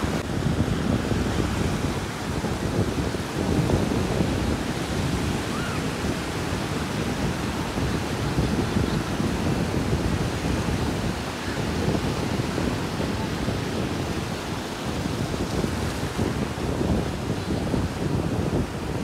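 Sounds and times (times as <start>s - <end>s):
ocean surf breaking: 0.0s - 19.0s
wind buffeting microphone: 0.0s - 19.0s.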